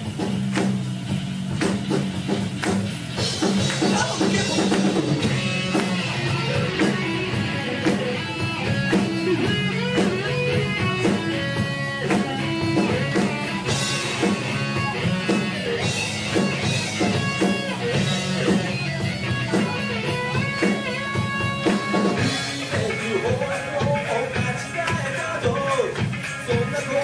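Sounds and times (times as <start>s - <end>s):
drum kit: 0.0s - 27.0s
electric guitars: 0.0s - 27.0s
keyboard: 1.6s - 27.0s.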